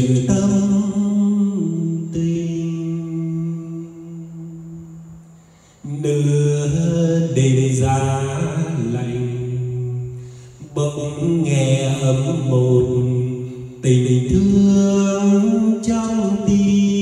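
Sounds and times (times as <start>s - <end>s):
man singing ballad with echo: 0.0s - 5.1s, 5.7s - 17.0s.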